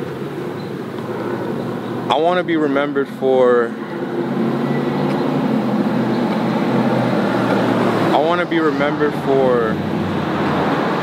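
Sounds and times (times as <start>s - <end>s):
vehicle driving past: 0.9s - 11.0s
people speaking: 2.1s - 3.7s, 8.1s - 9.8s.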